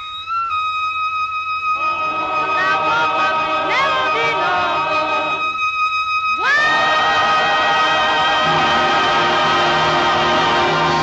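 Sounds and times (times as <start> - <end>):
swing band and singers chord: 1.8 - 5.5, 6.4 - 11.0.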